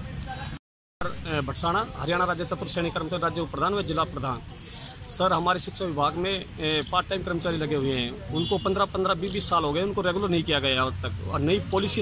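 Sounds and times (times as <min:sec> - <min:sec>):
people talking: 0:00.0 - 0:12.0
high-pitched insect drone: 0:01.0 - 0:12.0.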